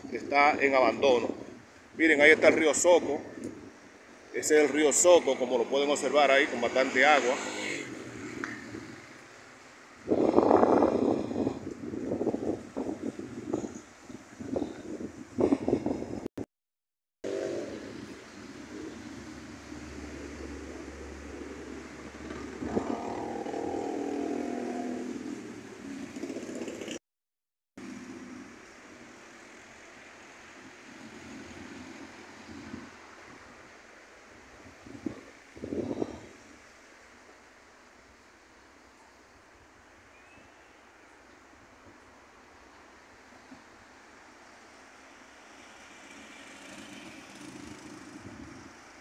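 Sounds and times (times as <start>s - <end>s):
street background noise: 0.0s - 16.2s, 17.2s - 27.0s, 27.8s - 49.0s
vehicles passing: 0.3s - 13.2s, 17.3s - 27.0s, 41.9s - 49.0s
vehicle engine: 17.3s - 27.0s, 45.3s - 48.9s.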